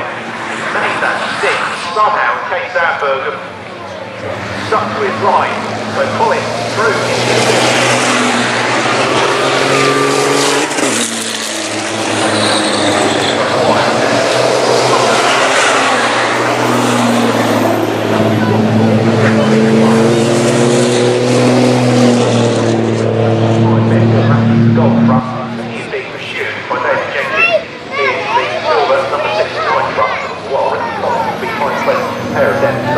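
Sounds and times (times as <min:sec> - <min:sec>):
diesel truck engines passing: 0:00.0 - 0:32.9.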